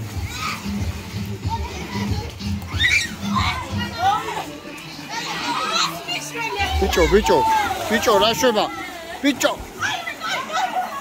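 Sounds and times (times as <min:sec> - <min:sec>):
children shouting: 0:00.2 - 0:00.8, 0:01.6 - 0:09.0, 0:09.8 - 0:11.0
music with steady beat: 0:06.6 - 0:07.6.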